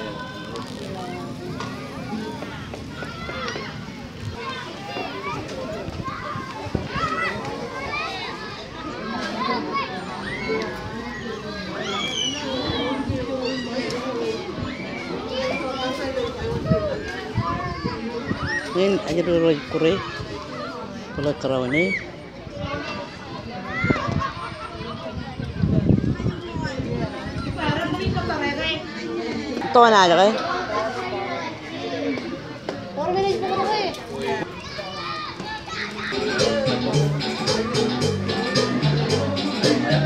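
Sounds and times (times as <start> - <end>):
crowd voices: 0.0 - 40.0
people talking: 0.0 - 40.0
children shouting as they play: 1.8 - 27.7, 30.4 - 40.0.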